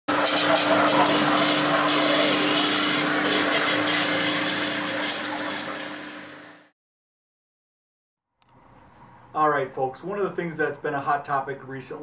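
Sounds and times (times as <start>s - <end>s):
machine humming and whistling: 0.1s - 6.7s.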